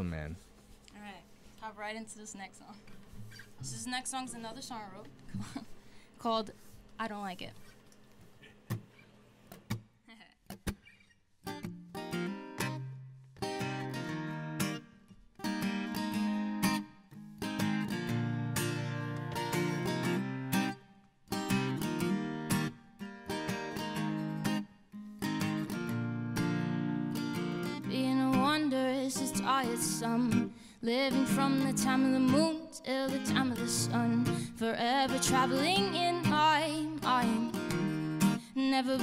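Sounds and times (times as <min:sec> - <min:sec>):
acoustic guitar playing: 0:00.0 - 0:39.0.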